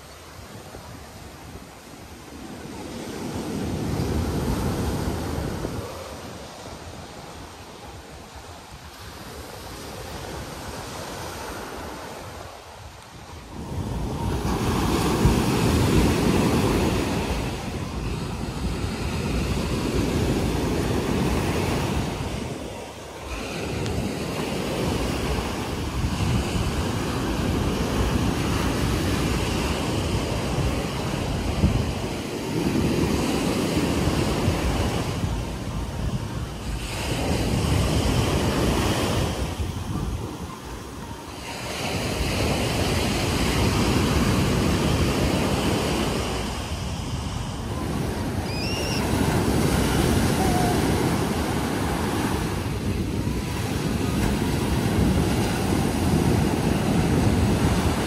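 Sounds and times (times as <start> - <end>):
surf breaking on beach: 0.0 - 58.0.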